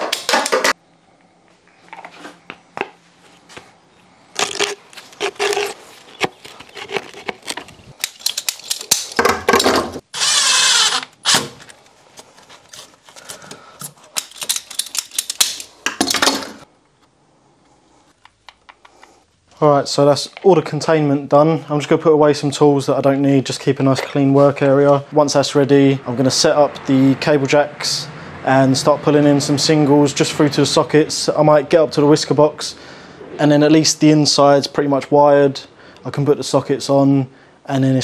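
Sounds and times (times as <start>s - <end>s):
cordless drill driving screw: 10.2s - 11.5s.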